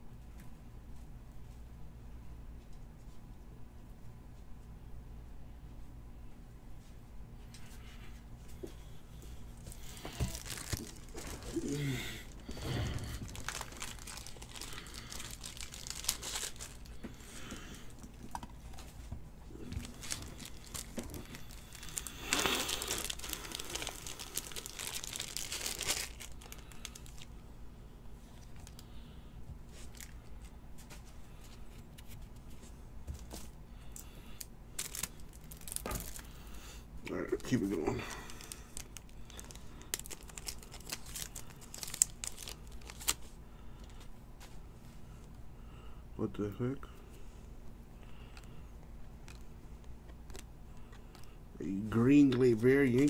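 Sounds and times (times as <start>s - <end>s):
plastic packaging crinkling: 9.5s - 27.3s, 29.7s - 30.5s, 33.3s - 36.4s, 37.4s - 44.1s, 52.1s - 53.0s.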